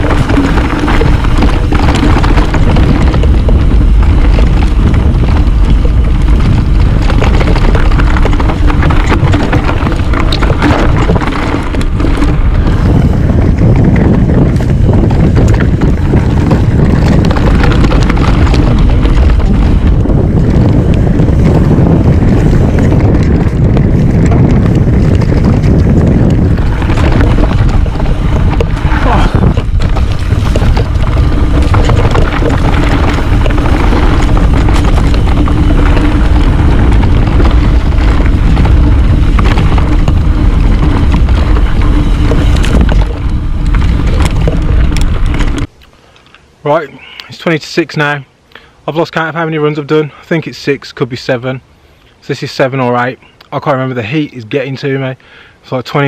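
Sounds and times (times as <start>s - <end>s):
bike tyres rumbling over dirt: 0.0s - 45.8s, 48.9s - 56.0s
wind buffeting microphone: 0.0s - 45.8s
steady low hum: 0.0s - 47.0s.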